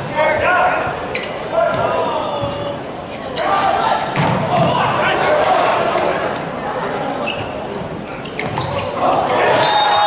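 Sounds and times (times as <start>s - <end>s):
players shouting: 8.9s - 10.0s.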